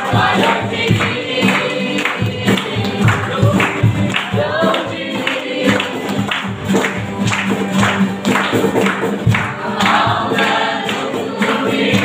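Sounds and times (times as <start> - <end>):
voices singing: 0.0 - 6.3, 9.2 - 12.0
cajon beat: 0.0 - 12.0
strummed acoustic guitars: 0.0 - 12.0.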